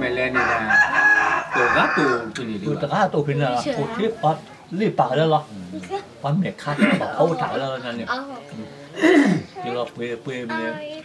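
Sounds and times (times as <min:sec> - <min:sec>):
men talking: 0:00.0 - 0:11.0
rooster crowing: 0:00.2 - 0:02.4.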